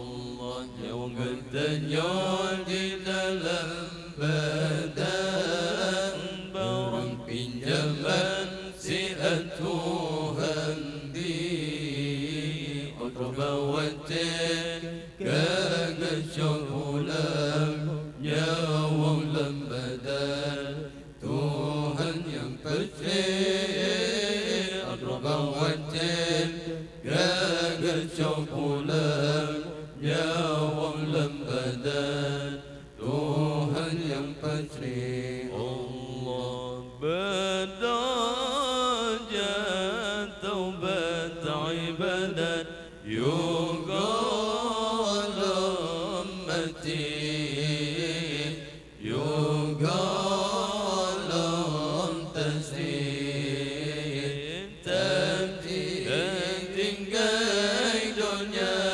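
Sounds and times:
man reciting melodically: 0.0s - 58.9s.

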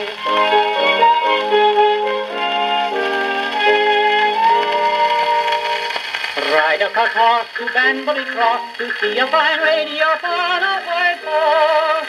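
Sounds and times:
small orchestra on old record: 0.0s - 12.0s
male tenor singing: 6.4s - 12.0s.

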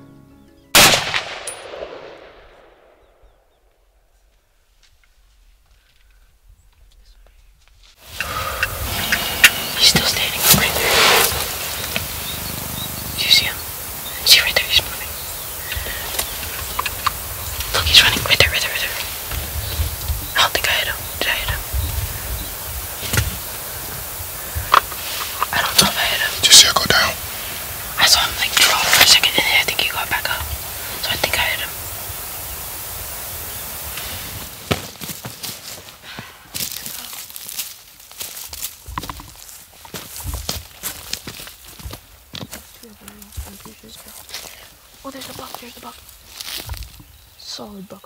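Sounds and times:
hushed whispering: 6.9s - 11.6s, 12.4s - 19.3s, 20.2s - 22.3s, 24.6s - 31.8s
steady hiss: 7.8s - 48.0s
whispered speech: 9.7s - 11.0s, 13.2s - 13.6s, 14.2s - 15.1s, 17.7s - 19.1s, 20.4s - 21.7s, 25.4s - 27.2s, 28.0s - 30.4s, 31.0s - 31.8s.

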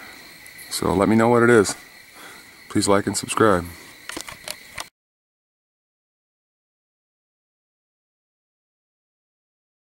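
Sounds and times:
crickets chirping: 0.0s - 4.9s
small clicks: 4.1s - 4.9s.

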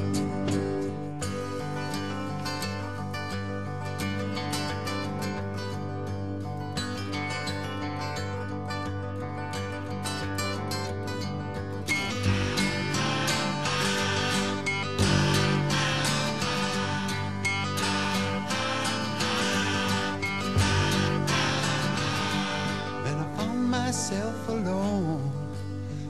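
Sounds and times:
folk music with acoustic guitar: 0.0s - 26.0s.

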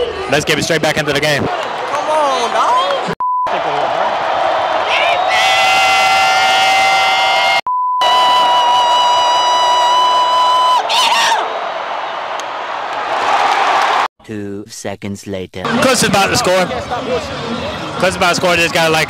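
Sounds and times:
stadium crowd noise: 0.0s - 14.1s, 15.7s - 19.0s
censor bleep tone: 7.7s - 8.1s.

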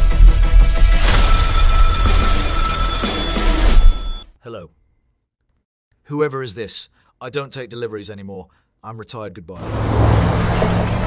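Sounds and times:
dramatic music with bass pulse: 0.0s - 1.0s
telephone ringing: 1.1s - 4.3s.

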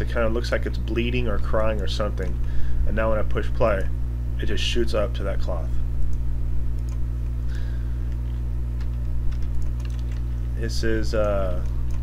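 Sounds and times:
low electrical hum: 0.0s - 12.0s
computer mouse clicks: 6.8s - 7.0s.

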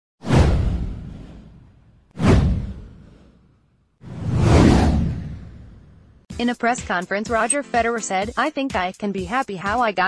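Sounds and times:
deep low rumble: 4.1s - 6.2s.

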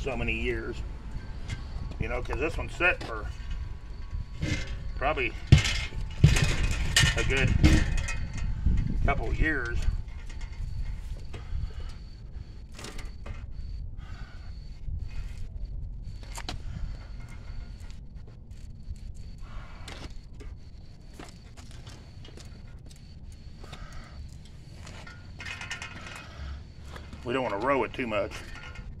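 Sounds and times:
low microphone rumble: 0.0s - 12.6s.

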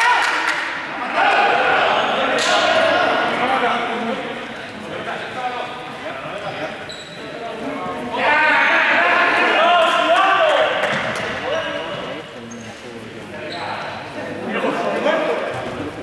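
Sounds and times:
young people shouting: 0.0s - 3.9s, 8.1s - 11.8s
hubbub in echoing hall: 0.0s - 16.0s.

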